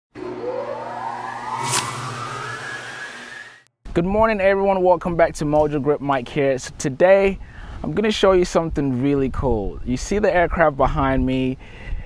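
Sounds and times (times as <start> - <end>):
low drone: 0.1 - 3.7
synthetic whoosh rising in pitch: 0.1 - 3.7
sharp hit: 0.2 - 3.6.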